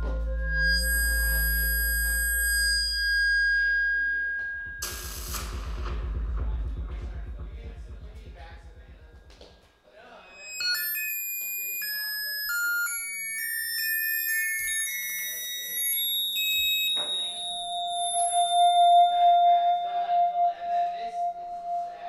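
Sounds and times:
electronic music through speakers: 0:00.0 - 0:09.4, 0:16.9 - 0:22.0.

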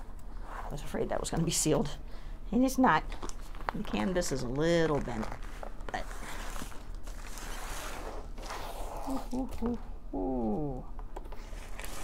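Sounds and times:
cardboard rubbing and scraping: 0:05.1 - 0:09.3, 0:11.4 - 0:12.0.

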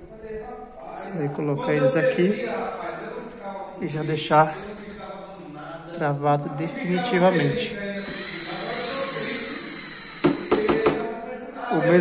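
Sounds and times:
power screwdriver running: 0:08.0 - 0:10.9.

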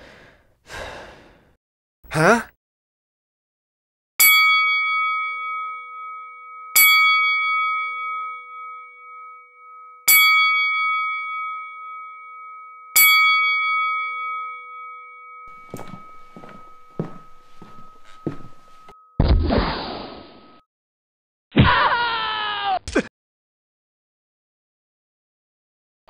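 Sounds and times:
bell-like metallic ding: 0:04.2 - 0:19.4
soft scuffing thump: 0:15.7 - 0:18.9.

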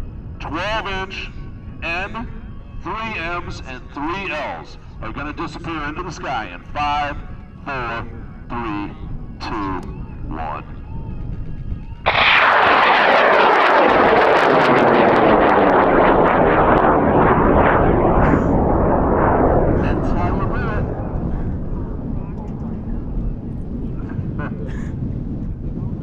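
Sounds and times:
rocket motors roaring: 0:00.0 - 0:26.0.

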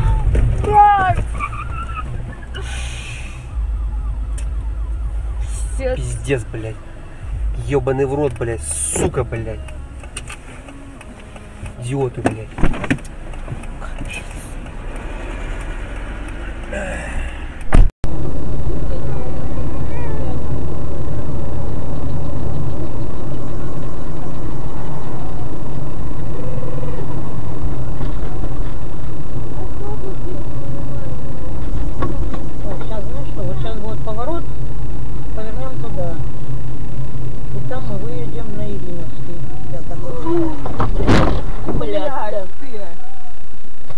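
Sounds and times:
car cabin and road noise: 0:00.0 - 0:43.9
engine and road rumble: 0:00.0 - 0:43.9.

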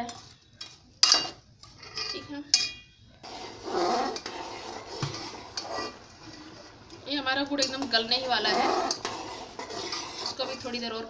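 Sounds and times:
spoon stirring in metal pot: 0:00.0 - 0:11.0
spoon clinking against pot: 0:00.1 - 0:02.9.

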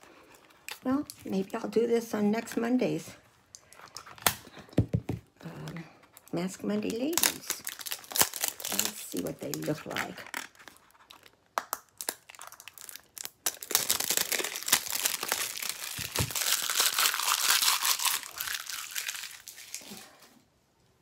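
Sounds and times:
packaging crinkling: 0:06.2 - 0:20.3.

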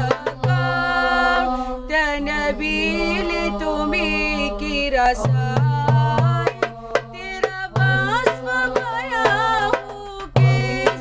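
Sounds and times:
percussion beat: 0:00.0 - 0:01.4, 0:05.1 - 0:11.0
girls singing: 0:00.0 - 0:11.0.

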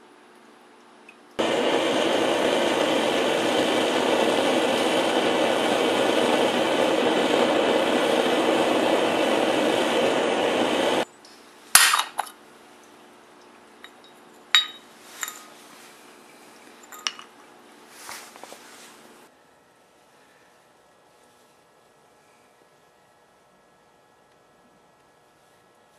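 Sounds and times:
propane burner rushing: 0:01.4 - 0:11.0
sharp metallic clink: 0:13.8 - 0:15.5.

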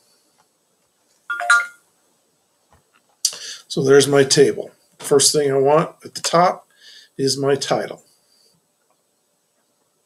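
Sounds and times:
electronic notification chime: 0:01.3 - 0:01.8.

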